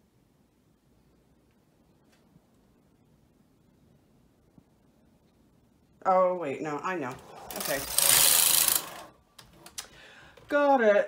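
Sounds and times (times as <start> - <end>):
knitting machine carriage rushing: 7.2 - 9.7.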